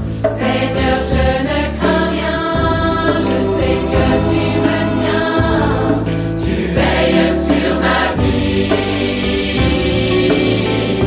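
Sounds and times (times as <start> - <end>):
choir singing worship song: 0.0 - 11.0
instrumental accompaniment: 0.0 - 11.0.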